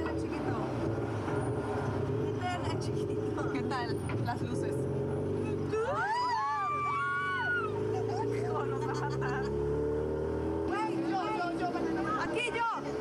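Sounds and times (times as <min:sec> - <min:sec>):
vehicle engine humming: 0:00.0 - 0:13.0
people chattering: 0:02.1 - 0:09.9, 0:10.7 - 0:13.0.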